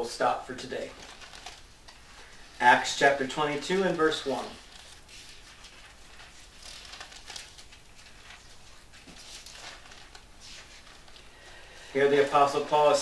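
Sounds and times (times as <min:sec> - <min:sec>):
book pages being turned: 0:00.8 - 0:11.3.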